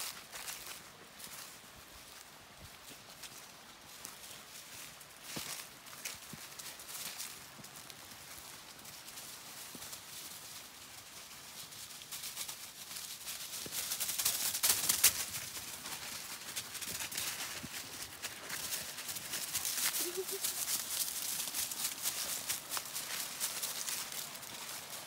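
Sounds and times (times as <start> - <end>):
footsteps crunching dry leaves: 0.0 - 25.0.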